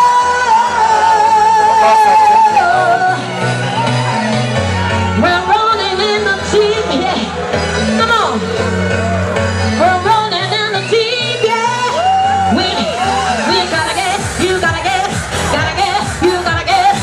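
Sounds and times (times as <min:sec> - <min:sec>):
woman singing into microphone: 0:00.0 - 0:03.4, 0:05.2 - 0:07.3, 0:09.7 - 0:17.0
pop backing music: 0:00.0 - 0:17.0.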